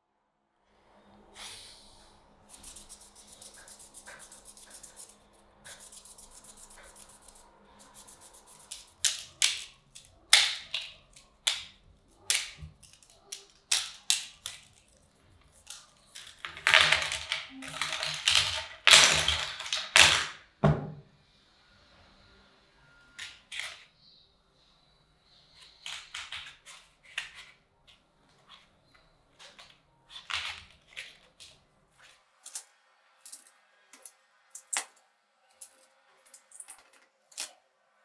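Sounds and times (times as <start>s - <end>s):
plastic decks clacking together: 8.7s - 14.8s, 15.6s - 20.4s, 25.8s - 27.5s, 29.4s - 31.6s
plastic decks clattering down: 16.4s - 20.3s.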